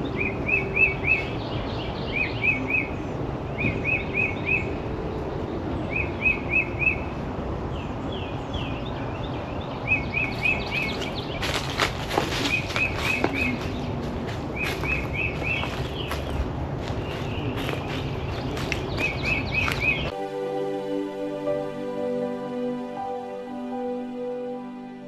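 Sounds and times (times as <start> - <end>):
outdoor background noise: 0.0 - 25.0.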